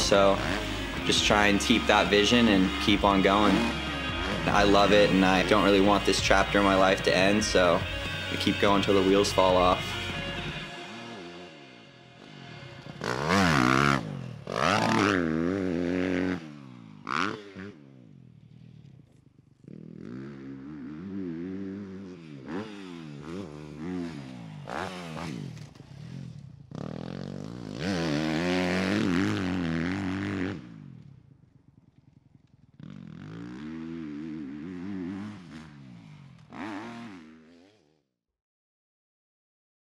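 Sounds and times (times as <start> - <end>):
dirt bike engine revving: 0.0 - 31.2, 32.7 - 38.0.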